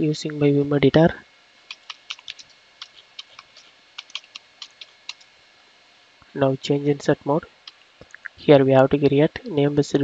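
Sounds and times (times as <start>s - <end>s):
keyboard key clicks: 1.7s - 5.2s.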